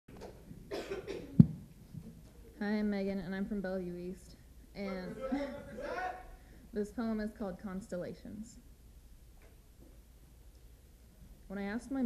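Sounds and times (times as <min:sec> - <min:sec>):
person coughing: 0:00.7 - 0:01.4.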